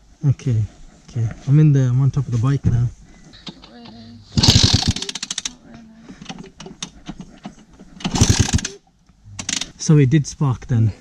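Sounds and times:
engine kicked over: 4.4 - 5.6, 7.8 - 8.8, 9.4 - 9.8.

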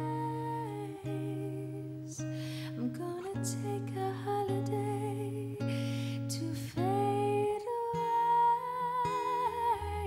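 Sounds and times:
woman singing a high note: 0.0 - 2.1.

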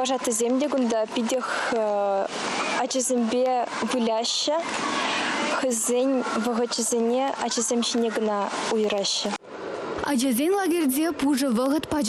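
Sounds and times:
young woman talking: 0.0 - 4.8, 5.6 - 9.4, 10.0 - 12.0.

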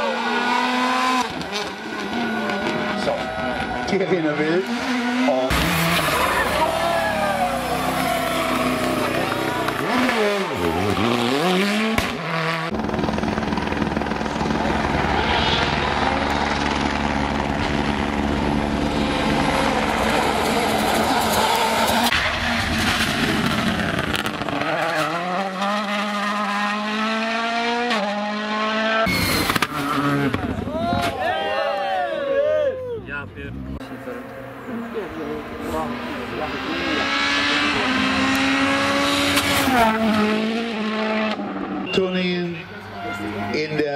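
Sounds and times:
rally car engines revving: 0.0 - 31.1, 33.3 - 43.9.

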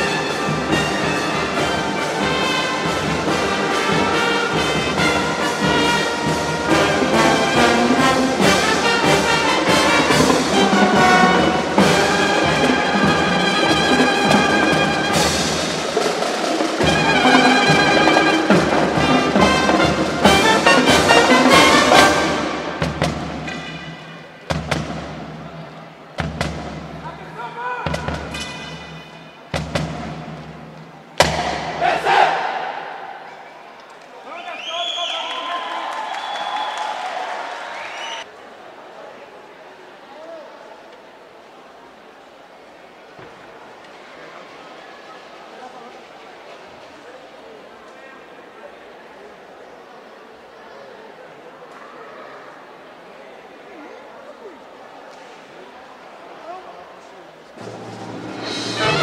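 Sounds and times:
marching band playing: 0.0 - 33.5, 57.6 - 59.0
short percussion hits: 27.9 - 33.4.

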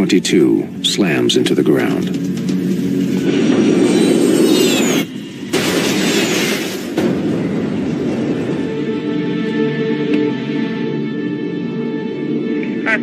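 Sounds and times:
low sustained music tones: 0.0 - 4.3, 7.2 - 13.0
jet engines roaring: 0.0 - 13.0.

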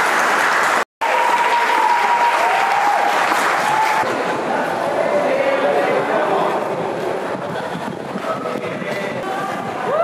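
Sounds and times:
audience applause: 0.0 - 4.1
crowd voices: 1.0 - 10.0.

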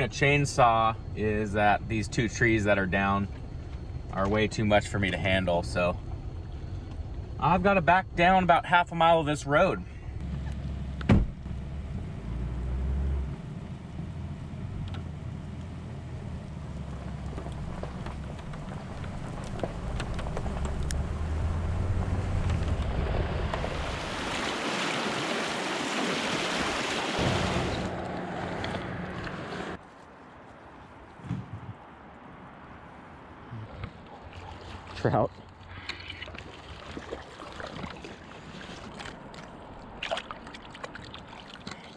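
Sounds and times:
vehicle engine humming: 0.0 - 29.9.

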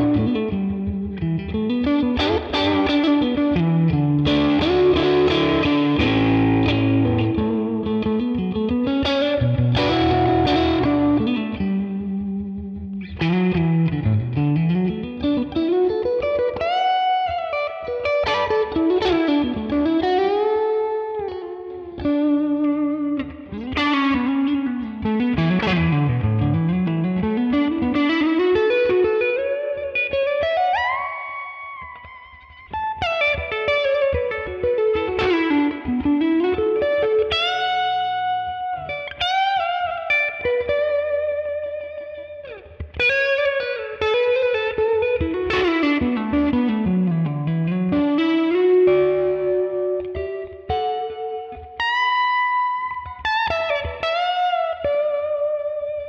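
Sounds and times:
electric guitar blues lead: 0.0 - 56.0.

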